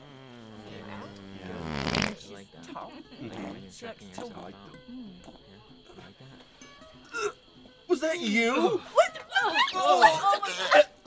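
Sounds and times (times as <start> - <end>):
low buzzing fart: 0.0 - 2.4.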